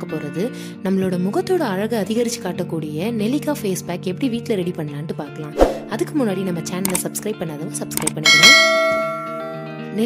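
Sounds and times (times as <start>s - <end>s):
soft background music: 0.0s - 10.0s
bell chime: 8.2s - 9.7s.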